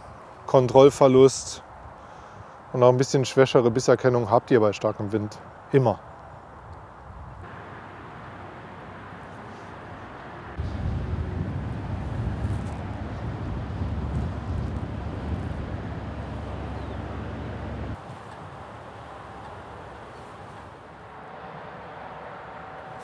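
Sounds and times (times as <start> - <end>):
wind buffeting microphone: 9.8 - 20.7.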